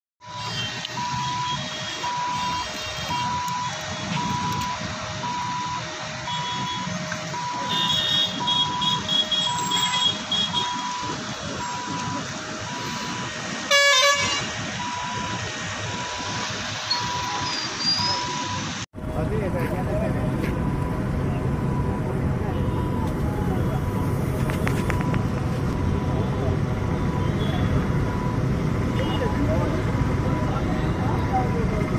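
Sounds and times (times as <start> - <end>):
two-tone warning siren: 0.2 - 18.8, 20.3 - 31.9
road traffic: 0.2 - 31.9
vehicle horns honking: 6.3 - 11.0, 13.7 - 14.6, 29.0 - 29.4.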